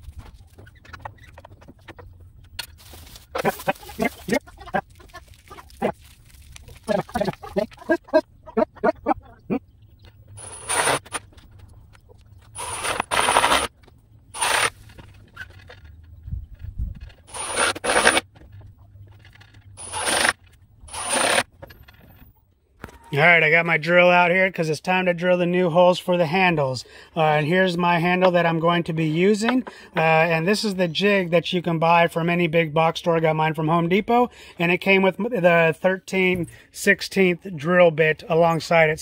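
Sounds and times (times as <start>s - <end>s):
impact driver driving screws: 10.4s - 11.2s, 12.6s - 13.7s, 14.4s - 14.8s, 17.3s - 18.2s, 19.8s - 21.5s.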